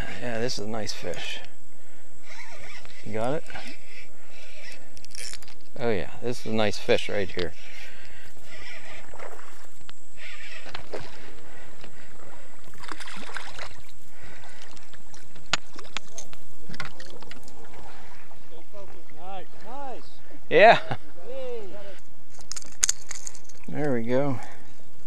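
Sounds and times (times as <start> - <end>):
water splashing: 7.9 - 20.2.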